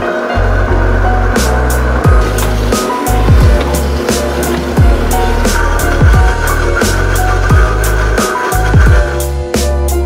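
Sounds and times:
electronic music with steady beat: 0:00.7 - 0:10.0.

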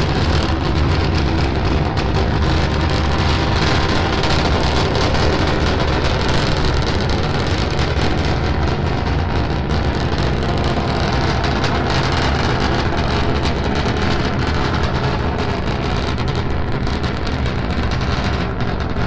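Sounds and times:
rocket engines rumbling: 0:00.0 - 0:19.0.

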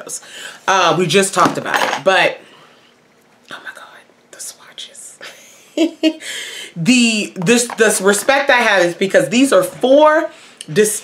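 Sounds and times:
woman whispering: 0:03.5 - 0:05.2.

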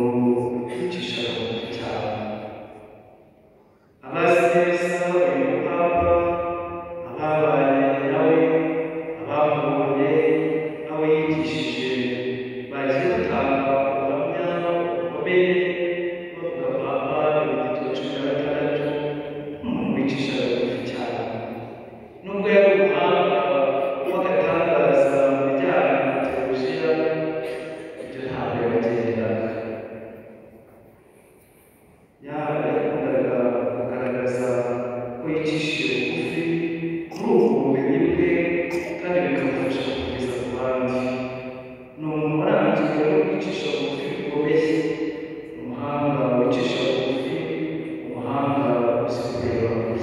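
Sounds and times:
man chanting: 0:00.0 - 0:02.4, 0:04.0 - 0:21.5, 0:22.1 - 0:29.6, 0:32.2 - 0:41.2, 0:42.0 - 0:44.9, 0:45.5 - 0:50.0
breaths: 0:03.5 - 0:04.0, 0:31.0 - 0:32.2.

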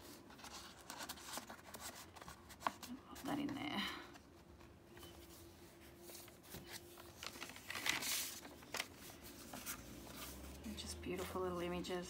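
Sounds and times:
paper pages rustling: 0:00.0 - 0:12.0.

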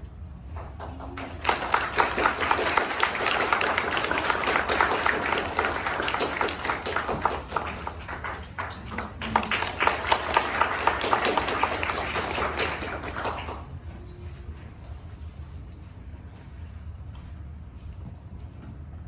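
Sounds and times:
audience applauding: 0:00.5 - 0:14.1.

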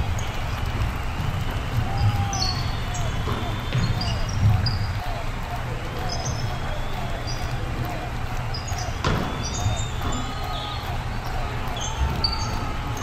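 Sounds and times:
players' voices: 0:00.0 - 0:13.0
sneakers squeaking: 0:00.0 - 0:13.0
basketball bouncing on wooden floor: 0:00.1 - 0:05.0.

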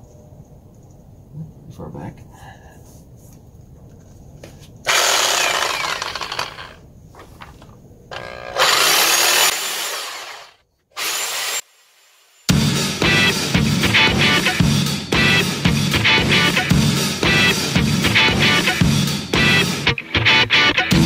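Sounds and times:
reciprocating saw cutting metal: 0:04.9 - 0:06.8, 0:08.1 - 0:12.5
music: 0:12.5 - 0:21.0.

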